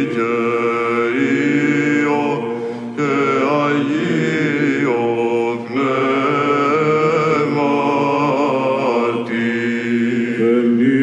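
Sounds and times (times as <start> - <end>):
held vocal drone: 0.0 - 11.0
men chanting: 0.0 - 11.0.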